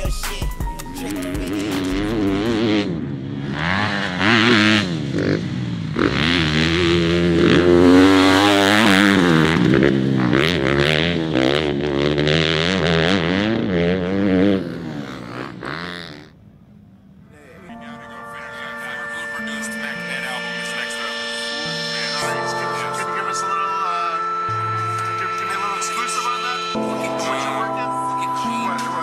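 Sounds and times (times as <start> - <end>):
motocross bike engine revving: 1.0 - 17.3.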